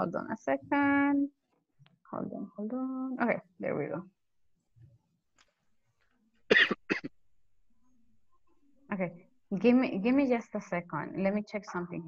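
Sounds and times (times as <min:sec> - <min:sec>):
person coughing: 0:06.5 - 0:07.1.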